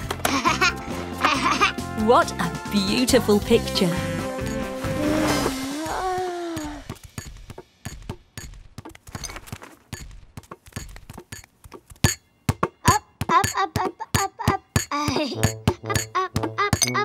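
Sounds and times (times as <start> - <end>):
cartoon character groan: 5.0 - 6.9
high little voice sounds: 5.0 - 6.9.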